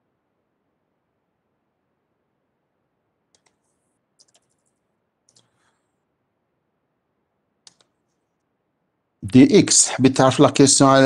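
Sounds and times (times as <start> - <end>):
faint keyboard typing: 3.2 - 6.0, 7.6 - 8.6.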